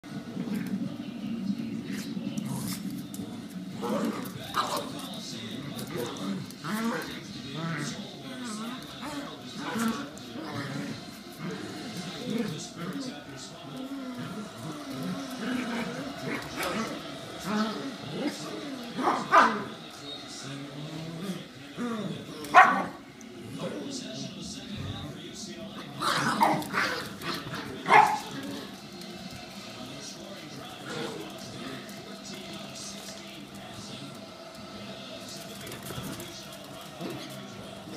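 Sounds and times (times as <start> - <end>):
small dogs growling: 0.2 - 1.0, 1.7 - 37.9
small dogs barking and yipping: 22.5 - 23.0, 27.8 - 28.3.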